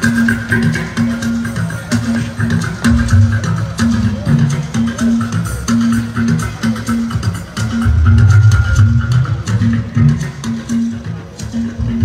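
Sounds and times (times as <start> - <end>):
bass guitar: 2.2 - 5.2, 6.1 - 12.0.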